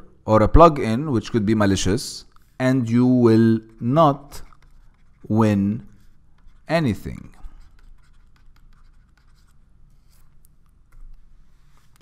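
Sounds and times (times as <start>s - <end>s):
stylus scratching on pen tablet: 3.6s - 10.3s.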